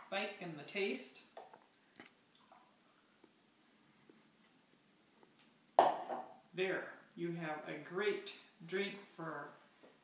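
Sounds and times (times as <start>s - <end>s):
plastic jug knocking on wood: 5.8s - 6.4s.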